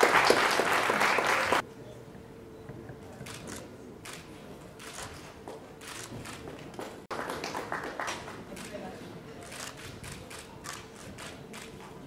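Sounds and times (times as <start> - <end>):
light scattered applause: 0.0 - 1.6, 6.7 - 8.9.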